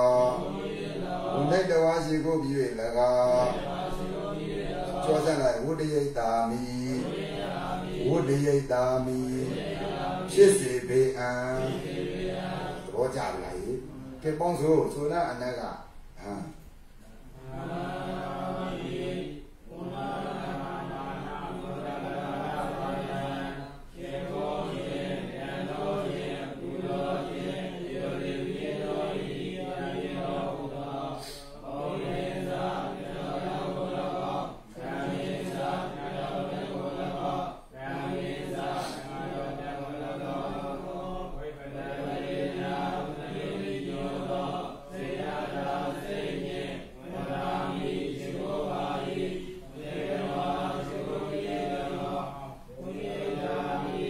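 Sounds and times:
person chanting: 0:00.0 - 0:54.0.

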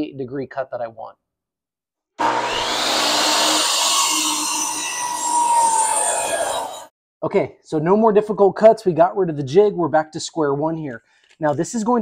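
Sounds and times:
miter saw cutting wood: 0:02.2 - 0:06.9.

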